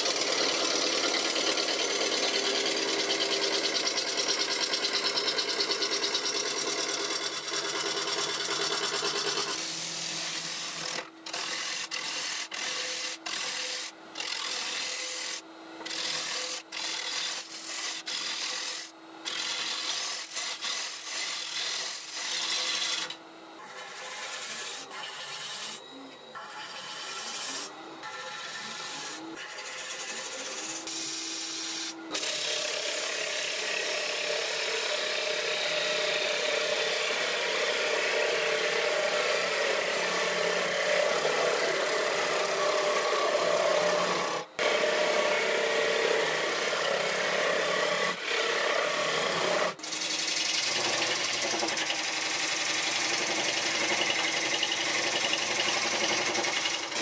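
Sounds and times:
wood lathe tool shaving wood: 0.0s - 57.0s.

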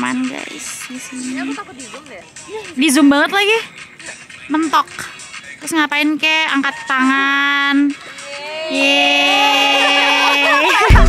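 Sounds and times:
loud music with a beat: 0.0s - 11.0s
young women cheering: 8.1s - 11.0s.

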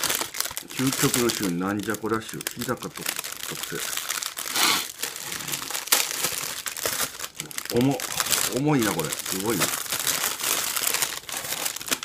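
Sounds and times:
food packaging crinkling: 0.0s - 12.0s.

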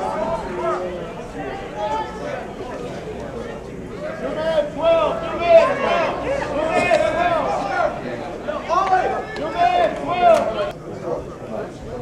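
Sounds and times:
people shouting: 4.1s - 10.7s.

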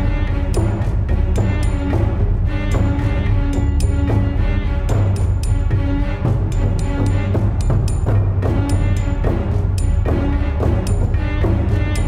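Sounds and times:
sharp percussive strikes: 0.0s - 12.0s
soundtrack music with heavy bass: 0.0s - 12.0s.

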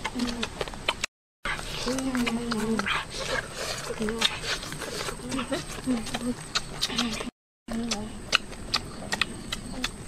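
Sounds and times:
chewing mouth clicks and smacks: 0.0s - 10.0s.

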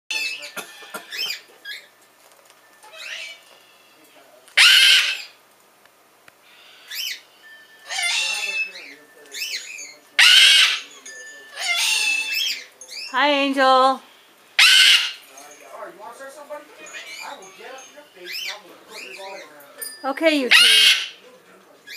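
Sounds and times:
cockatoo chirps and whistles: 2.8s - 3.5s, 4.6s - 5.4s, 6.7s - 10.8s, 14.6s - 15.2s
cockatoo loud screeches: 2.9s - 3.9s, 4.6s - 5.4s, 7.9s - 12.7s, 14.6s - 15.3s, 20.5s - 21.2s.

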